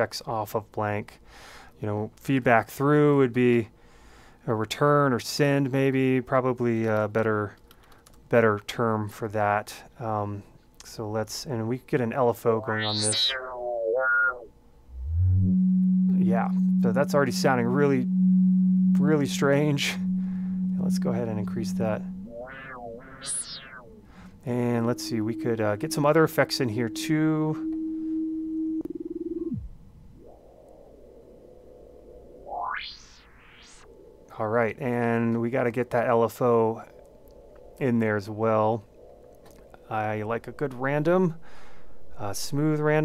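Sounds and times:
falling feedback tone: 0:12.4 - 0:35.2, 0:39.8 - 0:43.0
filtered noise sweep: 0:12.4 - 0:39.1, 0:39.7 - 0:43.0
low droning tone: 0:12.6 - 0:34.3, 0:39.2 - 0:43.0.

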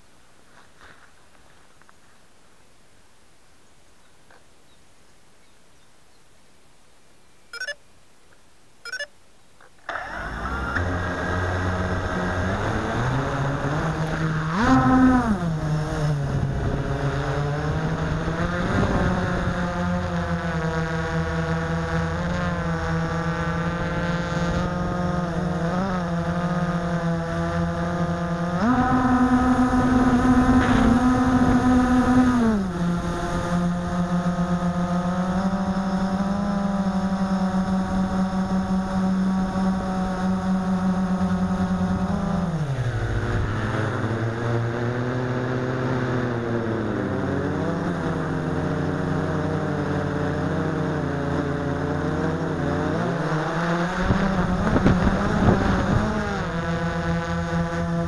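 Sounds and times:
quadcopter motors buzzing whine: 0:07.6 - 0:07.8, 0:08.9 - 0:09.1, 0:09.8 - 0:58.0.

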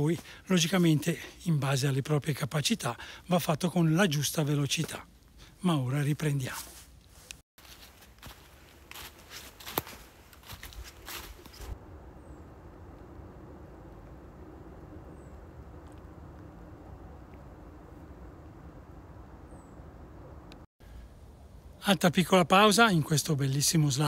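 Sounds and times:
faint outdoor hiss: 0:00.0 - 0:24.0
footsteps crunching dry leaves: 0:06.4 - 0:11.8.

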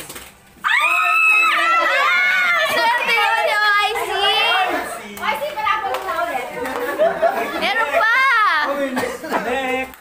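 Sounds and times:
people shouting and squealing: 0:00.6 - 0:05.5.

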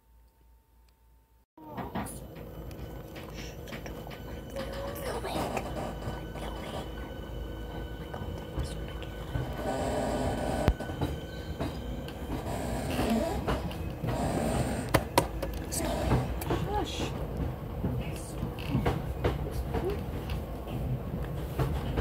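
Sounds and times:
train rumble inside carriage: 0:01.6 - 0:22.0.

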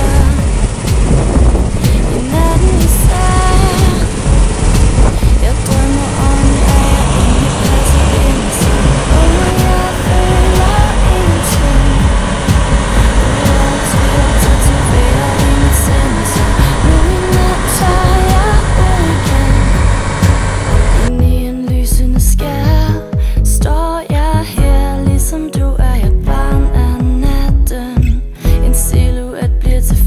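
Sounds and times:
loud music with heavy bass: 0:00.0 - 0:30.0.

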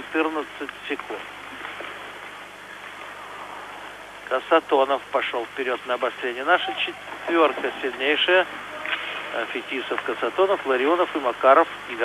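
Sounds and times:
broadcast hiss: 0:00.0 - 0:12.0.

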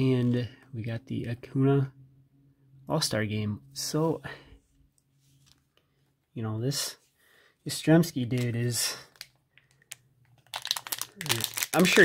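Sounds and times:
plastic wrapper crinkling: 0:08.3 - 0:12.0.

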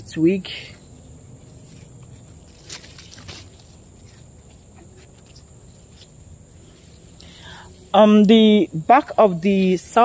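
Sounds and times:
high insect drone: 0:00.0 - 0:10.0
leaves and twigs rustling: 0:00.9 - 0:10.0.

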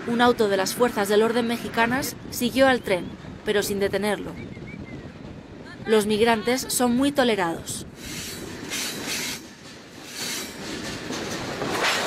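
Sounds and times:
steel train wheels on rails: 0:07.8 - 0:12.0.

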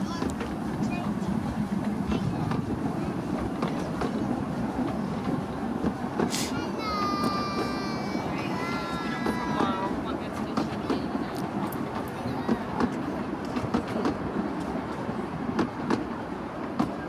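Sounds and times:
train carriages rumbling: 0:00.0 - 0:17.0
wheels clicking over rail joints: 0:00.0 - 0:17.0.

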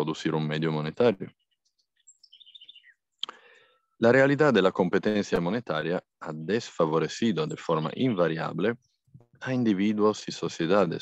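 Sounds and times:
faint bird chirps: 0:00.8 - 0:04.0, 0:06.3 - 0:09.6.

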